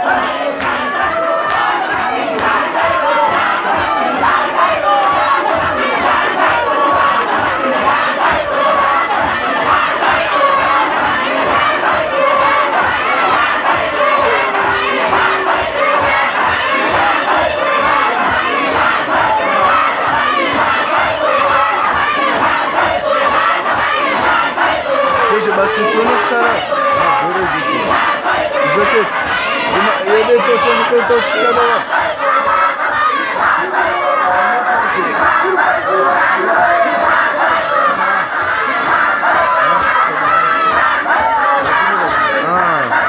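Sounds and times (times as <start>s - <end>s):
men chanting together: 0.0s - 43.0s
steady rhythmic pulse: 0.0s - 43.0s.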